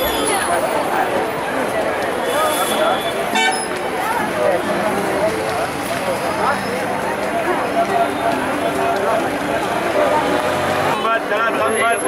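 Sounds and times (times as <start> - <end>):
babble of many voices: 0.0 - 12.0
vehicle horn toot: 2.2 - 3.7.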